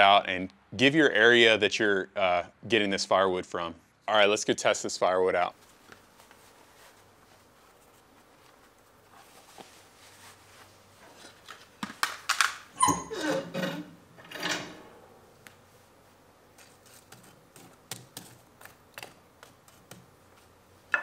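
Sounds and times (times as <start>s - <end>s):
door hinge squeak: 12.8s - 13.8s.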